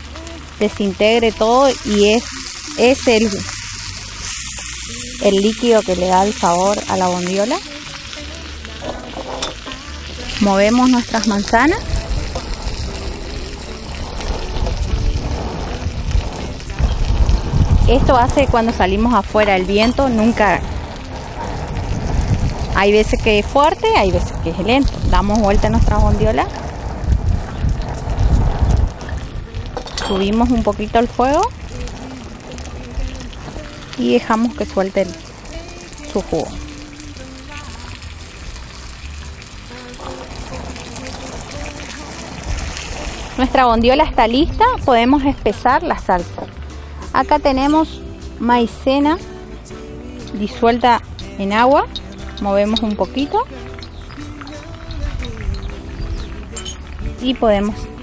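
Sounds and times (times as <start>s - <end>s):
wind rumble on microphone: 0.0s - 49.2s, 50.0s - 58.0s
meat sizzling in a frying pan: 0.0s - 58.0s
soft background music: 0.0s - 58.0s.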